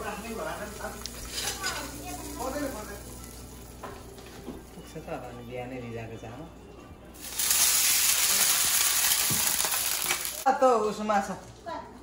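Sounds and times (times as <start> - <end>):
food sizzling in hot oil: 0.0 - 4.8, 7.2 - 10.5.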